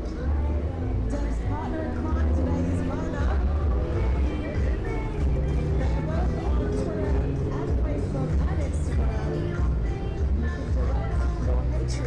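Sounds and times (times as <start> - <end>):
car engines rumbling low: 0.0 - 12.0.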